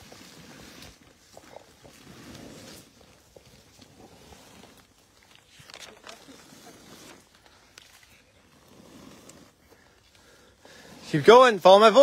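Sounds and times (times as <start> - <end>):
rustling and scraping on grass: 0.0 - 12.0.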